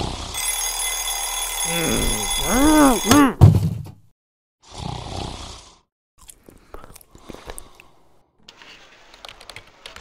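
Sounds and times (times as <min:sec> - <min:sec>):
alarm clock ringing: 0:00.4 - 0:03.2.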